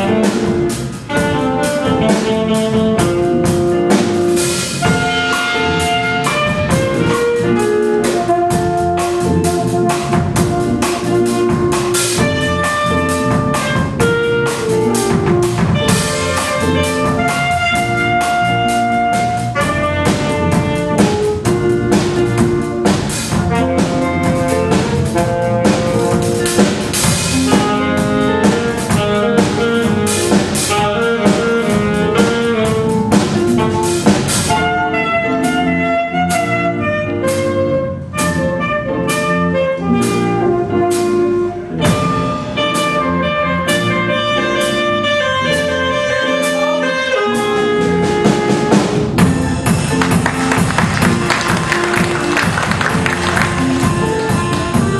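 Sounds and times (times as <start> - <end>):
jazz big band playing: 0.0 - 54.9.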